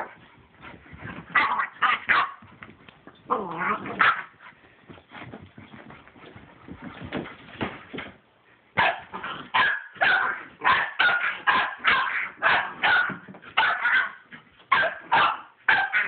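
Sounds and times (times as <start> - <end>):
puppy barking: 1.4 - 2.4, 8.8 - 16.0.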